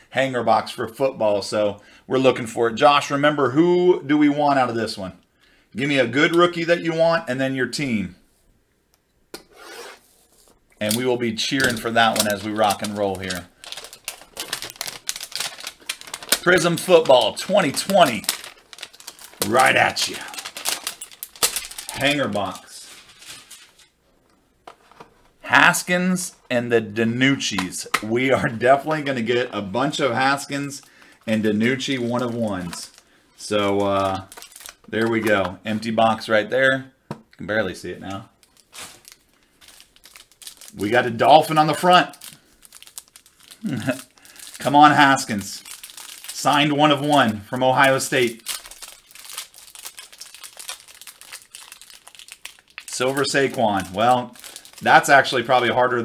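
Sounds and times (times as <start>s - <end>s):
plastic wrapper crinkling: 10.2s - 25.6s, 27.4s - 35.9s, 38.0s - 56.0s.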